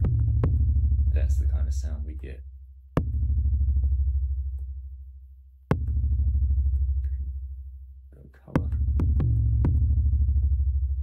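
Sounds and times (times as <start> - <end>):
deep kick drum boom: 0.0 - 2.1, 2.9 - 4.9, 5.7 - 7.0, 8.5 - 11.0.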